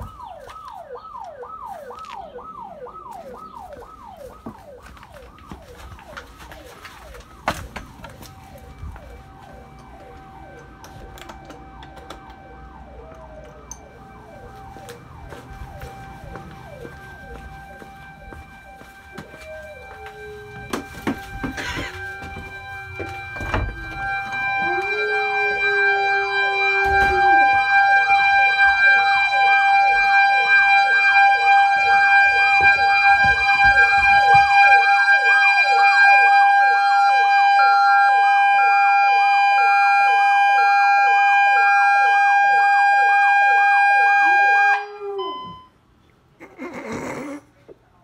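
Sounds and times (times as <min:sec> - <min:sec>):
burglar alarm siren wailing: 0:00.0 - 0:45.8
dog howling: 0:24.6 - 0:27.6, 0:44.4 - 0:45.4.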